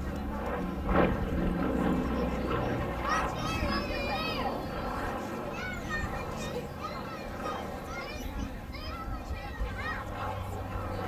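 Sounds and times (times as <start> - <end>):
children calling out and squealing: 2.6 - 11.0.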